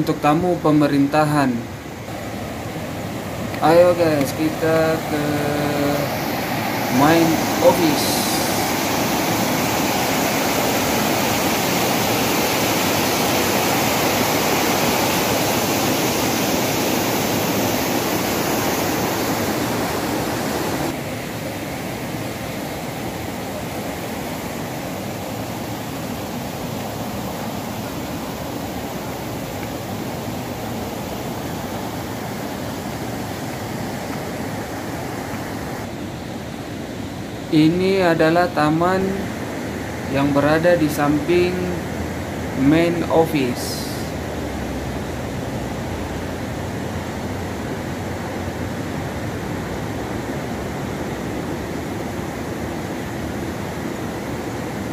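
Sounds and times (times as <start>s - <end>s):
river rapids rushing: 0.0s - 54.9s.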